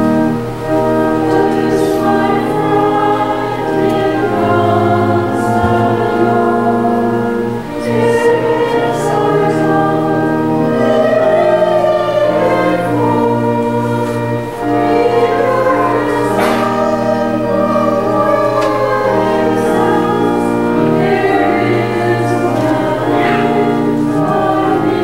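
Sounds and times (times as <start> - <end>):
choir singing a hymn: 0.0 - 25.0
organ: 0.0 - 25.0.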